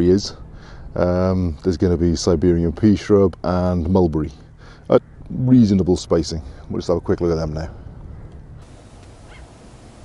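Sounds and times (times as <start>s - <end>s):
low outdoor background noise: 0.0s - 10.0s
faint bird call: 7.8s - 10.0s.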